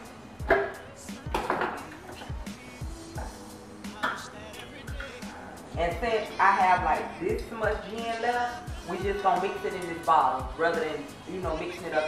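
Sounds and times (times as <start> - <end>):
background music with a beat: 0.0 - 12.0.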